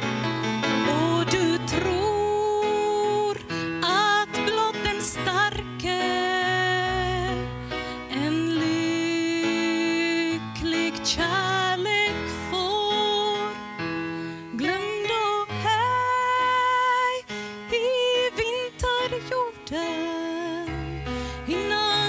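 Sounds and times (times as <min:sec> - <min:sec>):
instrumental accompaniment: 0:00.0 - 0:22.0
woman singing into a microphone: 0:00.0 - 0:22.0.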